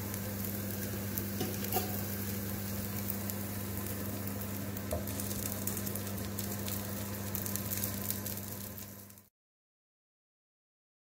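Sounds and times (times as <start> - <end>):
batter sizzling in oil: 0.0 - 9.3.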